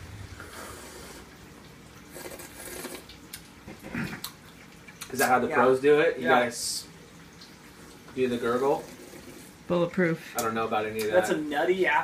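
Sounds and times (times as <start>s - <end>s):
people slurping coffee: 0.4s - 1.3s, 2.1s - 3.1s, 3.7s - 4.4s.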